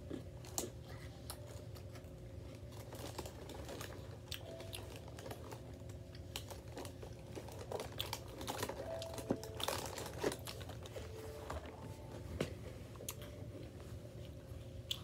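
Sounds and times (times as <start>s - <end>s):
child chewing: 0.0s - 15.0s.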